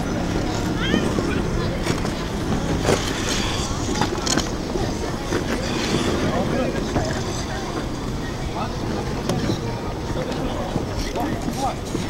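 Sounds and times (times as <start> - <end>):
people talking: 0.0 - 12.0
skate blades scraping ice: 0.4 - 7.8.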